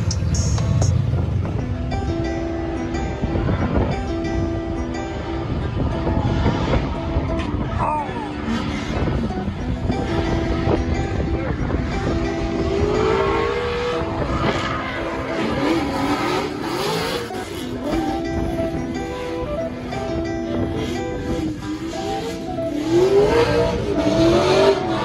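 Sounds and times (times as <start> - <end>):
background music with held notes: 0.0 - 25.0
car engine revving: 0.0 - 25.0.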